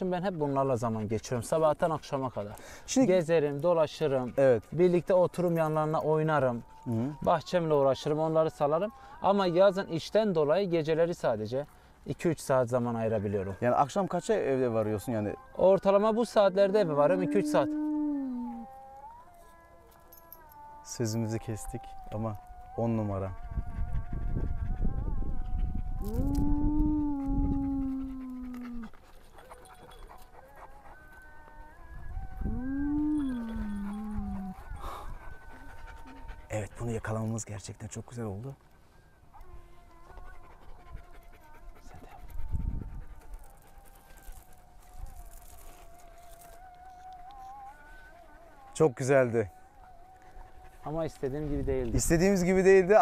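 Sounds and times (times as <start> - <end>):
dog panting: 0.0 - 8.9, 22.8 - 26.3, 27.2 - 31.6, 33.2 - 53.0
wolf howling: 0.0 - 11.7, 12.6 - 53.0
faint wavering tone: 26.0 - 36.4.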